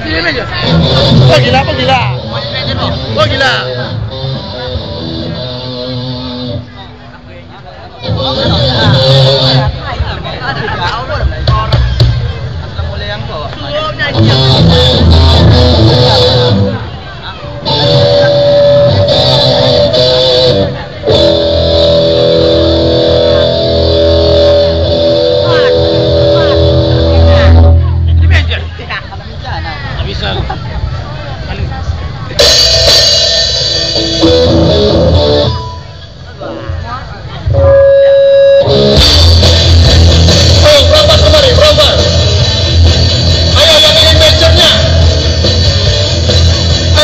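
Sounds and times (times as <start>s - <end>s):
live rock band playing: 0.0s - 13.0s, 13.7s - 28.8s, 32.3s - 47.0s
sustained guitar chords: 0.4s - 10.0s, 14.0s - 17.0s, 17.6s - 28.7s, 32.4s - 47.0s.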